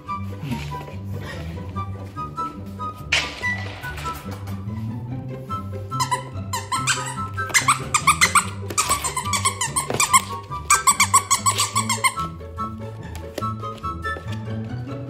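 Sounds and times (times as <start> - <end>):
squeaky plush toy squeaking: 5.9 - 12.4.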